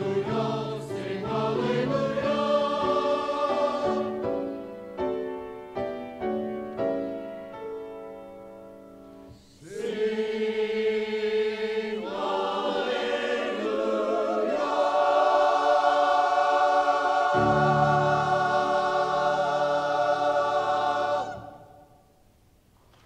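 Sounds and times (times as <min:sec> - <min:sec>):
church choir singing: 0:00.0 - 0:04.8, 0:09.3 - 0:22.2.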